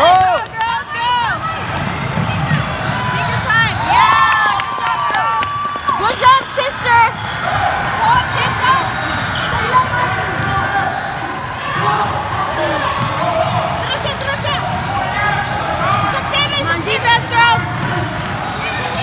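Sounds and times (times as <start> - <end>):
sneakers squeaking: 7.0 - 19.0.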